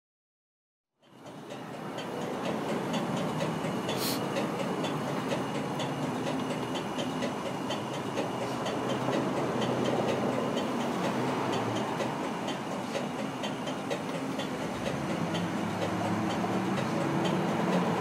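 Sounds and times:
hissing machine-like wash: 0:01.3 - 0:18.0.

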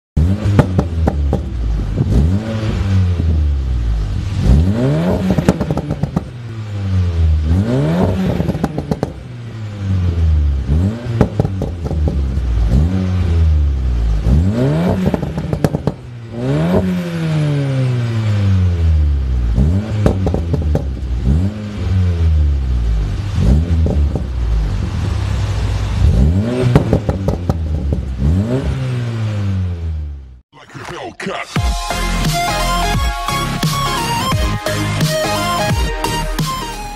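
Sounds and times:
car engine revving: 0:00.2 - 0:31.0.

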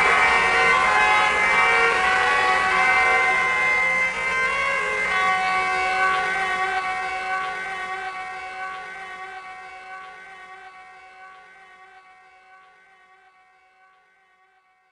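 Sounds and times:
distorted electric guitar chord: 0:00.0 - 0:13.1.

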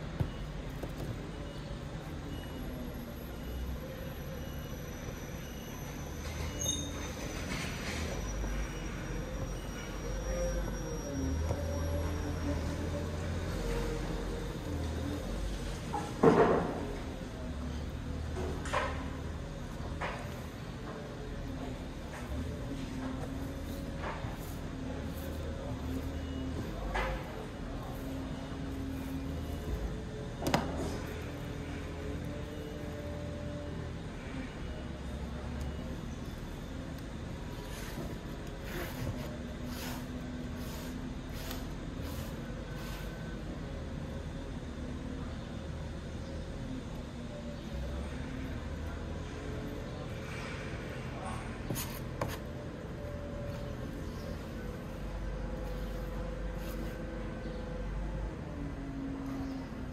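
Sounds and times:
low hum of a large hall: 0:00.0 - 0:59.9.

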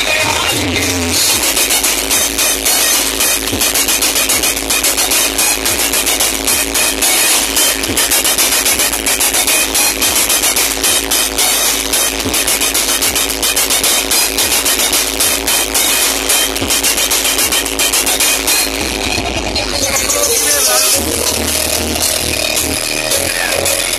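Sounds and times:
loud electronic dance music: 0:00.0 - 0:23.9.

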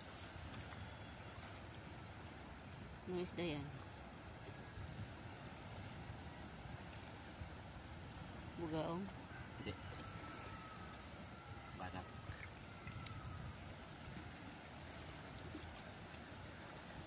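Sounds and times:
sea water against rocks: 0:00.0 - 0:17.0
wind: 0:00.0 - 0:17.0.

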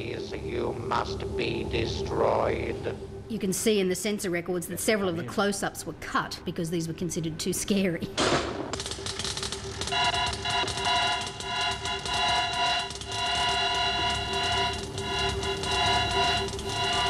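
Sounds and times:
low electronic hum: 0:00.0 - 0:17.0
dense rapid crackling: 0:08.3 - 0:17.0
high electronic tones chord: 0:09.4 - 0:17.0.

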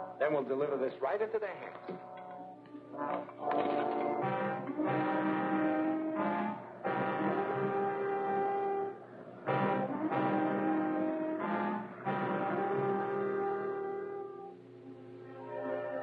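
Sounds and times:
dramatic orchestral brass music: 0:02.9 - 0:14.6, 0:15.3 - 0:16.0.

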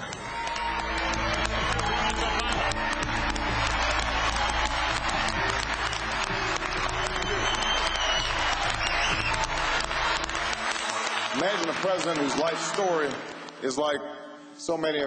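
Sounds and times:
crowd applauding: 0:00.0 - 0:13.7
background music: 0:00.0 - 0:15.0.

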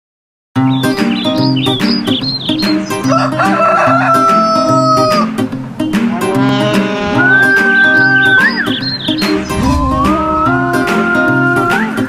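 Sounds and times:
light background music: 0:00.6 - 0:12.0
rooster crowing: 0:03.0 - 0:05.3, 0:06.1 - 0:08.6.

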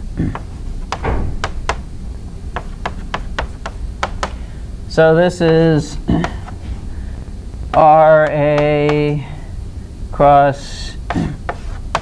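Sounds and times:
chalk clicking on board: 0:02.6 - 0:04.4, 0:11.1 - 0:12.0
chalk scraping on chalkboard: 0:11.1 - 0:12.0.

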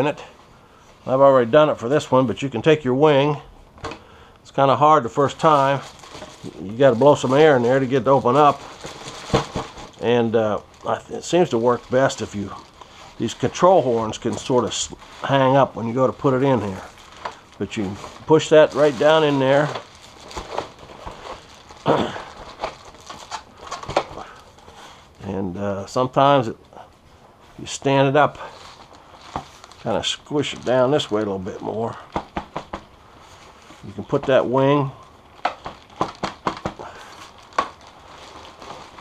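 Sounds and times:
foil bubble bag crinkling and rustling: 0:04.5 - 0:39.0.

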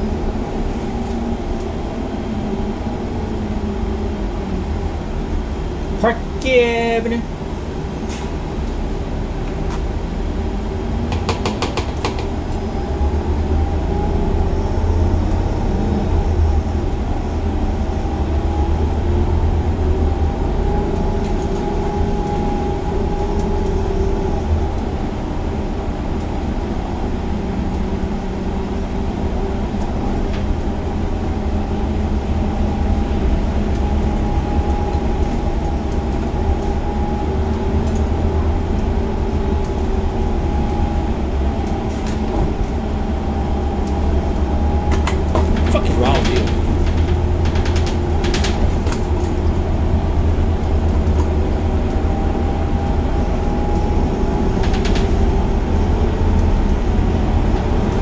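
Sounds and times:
bus engine rumble: 0:00.0 - 0:58.0
faint drivetrain whine: 0:07.0 - 0:58.0.

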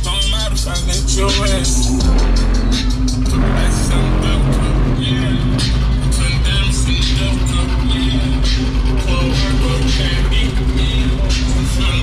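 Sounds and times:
loud music with heavy bass: 0:00.0 - 0:12.0.

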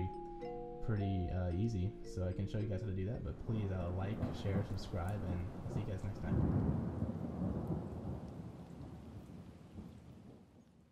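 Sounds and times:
low noisy rumble: 0:02.2 - 0:08.3.

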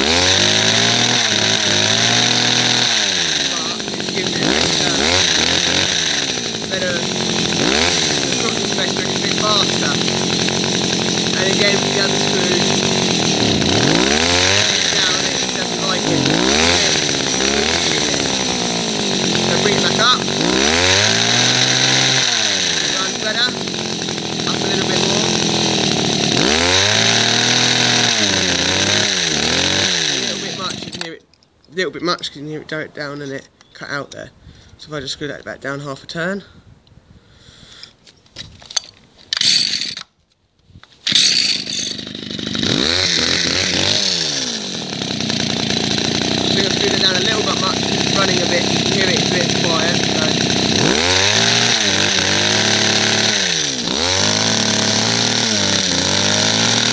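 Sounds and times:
hedge cutter engine running: 0:00.0 - 0:31.2, 0:39.3 - 0:40.1, 0:41.1 - 0:56.9
pull starter rasp: 0:00.0 - 0:32.4, 0:37.5 - 0:40.2, 0:40.8 - 0:56.9.

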